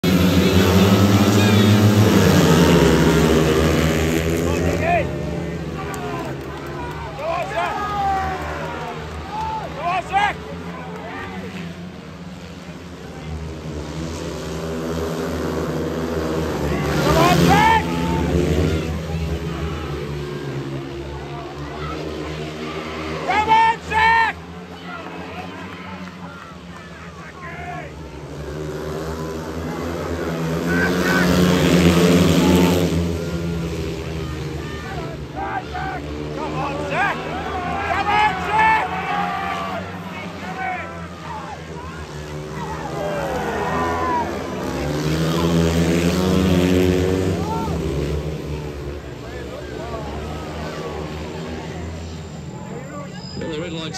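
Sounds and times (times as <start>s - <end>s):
voices: 0.0s - 14.5s, 15.2s - 53.9s
motorcycle engines racing: 0.0s - 53.9s.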